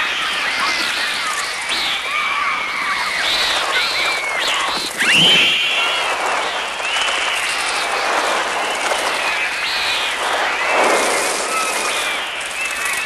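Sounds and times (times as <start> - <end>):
children screaming: 0.0 - 13.0
crows flapping wings: 0.0 - 13.0
shrill electronic bird cries: 0.0 - 13.0.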